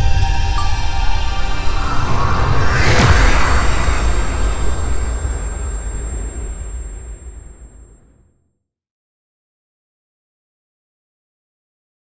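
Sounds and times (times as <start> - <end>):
deep cinematic boom: 0.0 - 8.0.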